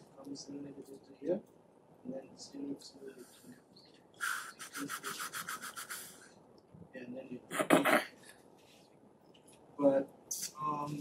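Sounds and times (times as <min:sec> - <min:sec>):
quick rubbing strokes: 0:04.2 - 0:06.3.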